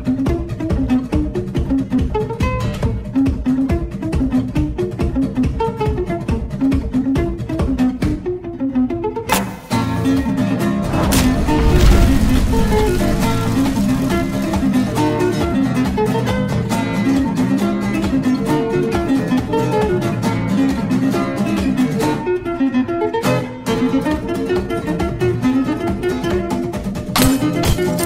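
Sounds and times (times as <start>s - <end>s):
plucked acoustic guitar music: 0.0s - 28.0s
deep low hit: 10.4s - 15.6s.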